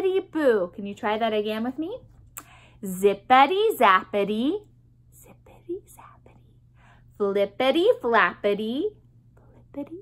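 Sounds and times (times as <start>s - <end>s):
faint low hum: 0.0s - 10.0s
woman whispering: 5.1s - 6.6s, 9.4s - 10.0s.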